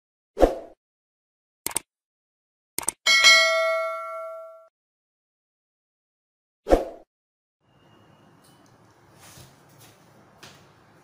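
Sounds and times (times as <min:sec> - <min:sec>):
bright bell ding: 0:03.1 - 0:04.7.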